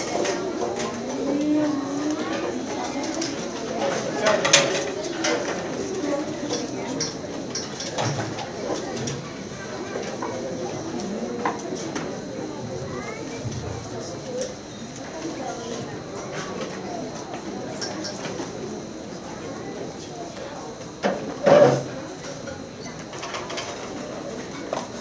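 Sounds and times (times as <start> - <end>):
murmur of audience and children: 0.0 - 25.0.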